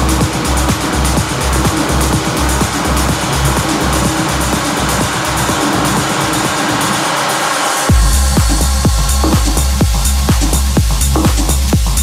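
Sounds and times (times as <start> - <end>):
techno track: 0.0 - 12.0.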